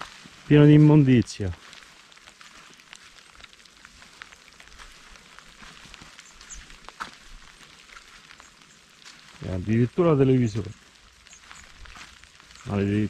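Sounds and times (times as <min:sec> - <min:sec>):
faint ticks and crackles: 0:00.0 - 0:13.0.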